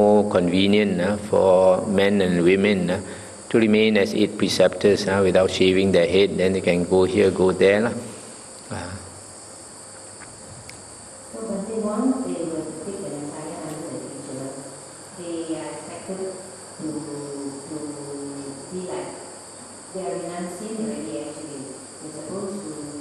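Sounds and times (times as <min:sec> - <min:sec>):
insects trilling: 0:00.0 - 0:23.0.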